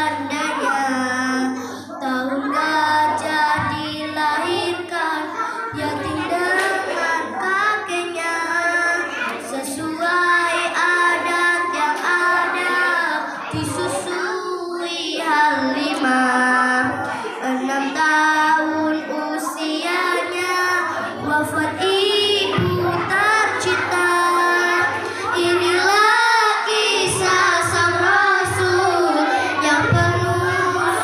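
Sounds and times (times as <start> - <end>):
girls singing through loudspeaker: 0.0 - 31.0.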